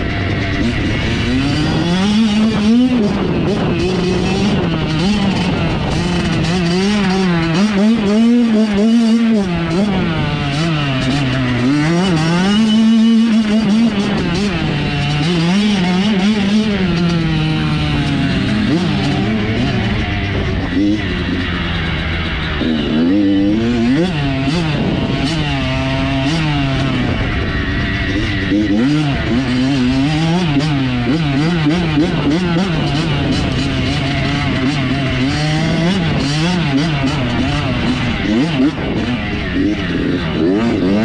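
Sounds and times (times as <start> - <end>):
dirt bike engine revving: 0.0 - 41.0.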